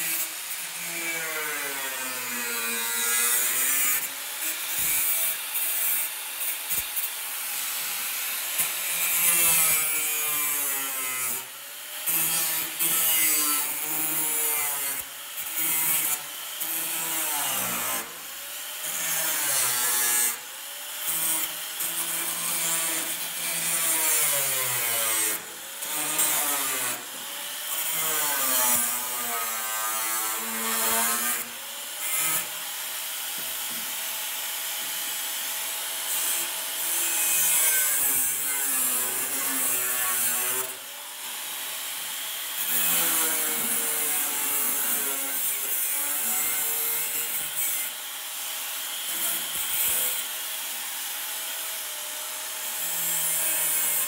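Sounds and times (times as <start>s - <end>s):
angle grinder cutting steel: 0.0s - 54.0s.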